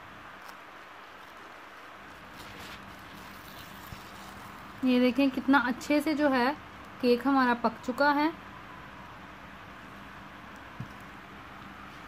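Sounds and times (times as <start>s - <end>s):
steady low hiss: 0.0s - 12.0s
paper crinkling: 0.4s - 4.8s.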